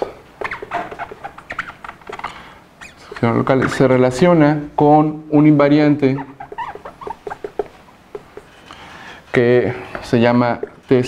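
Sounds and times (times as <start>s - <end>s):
whiteboard marker squeaking: 0.0s - 4.0s, 6.0s - 8.8s, 10.4s - 11.0s.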